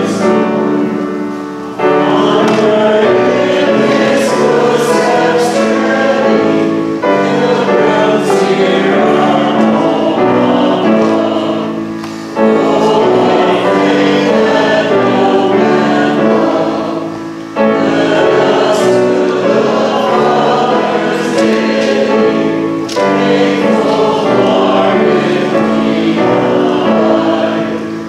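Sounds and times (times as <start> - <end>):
choir singing sacred music: 0.0 - 28.0.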